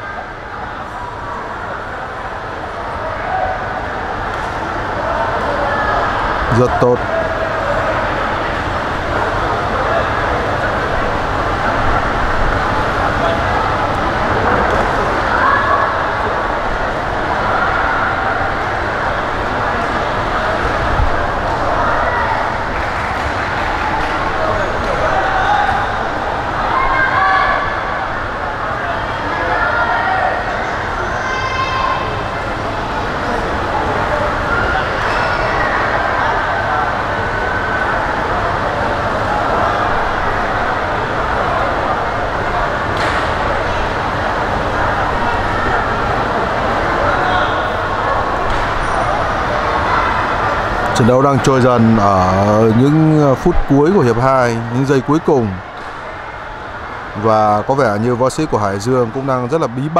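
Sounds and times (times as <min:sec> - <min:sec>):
crowd hubbub: 0:00.0 - 0:59.9.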